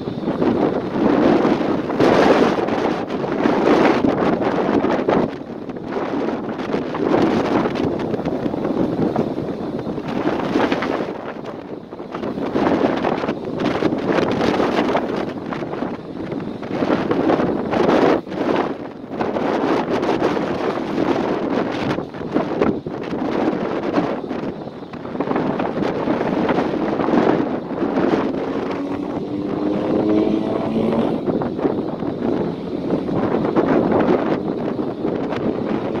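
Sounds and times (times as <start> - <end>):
wind buffeting microphone: 0.0 - 36.0
motor rising in pitch: 28.3 - 33.8.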